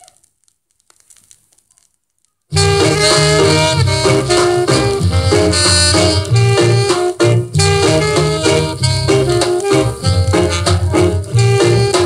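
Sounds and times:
vinyl record surface crackle: 0.0s - 12.0s.

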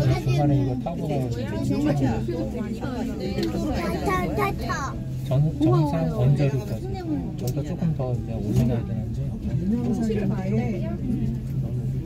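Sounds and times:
cable car low hum: 0.0s - 12.0s
people talking: 0.0s - 12.0s.

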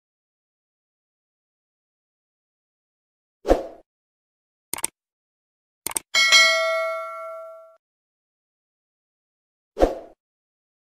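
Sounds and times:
mouse clicks: 4.8s - 5.0s, 5.9s - 6.1s
notification bell ding: 6.2s - 7.8s.

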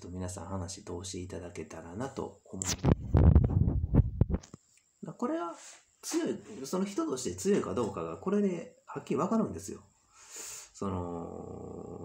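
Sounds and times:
fingers handling microphone: 2.6s - 4.6s.

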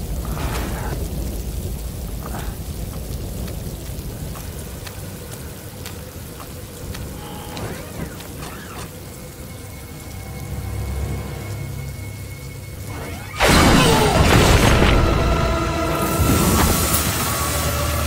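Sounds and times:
heavy rain pattering: 0.0s - 18.0s
thunder rumble: 0.0s - 18.0s.

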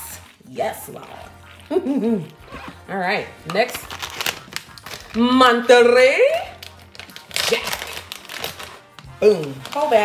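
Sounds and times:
plastic bag crinkling: 3.4s - 10.0s.

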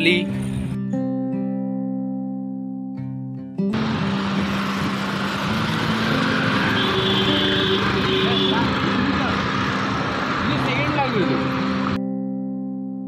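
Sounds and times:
rushing noise of bicycle ride: 3.8s - 12.0s
vehicle engine hum: 3.8s - 12.0s.

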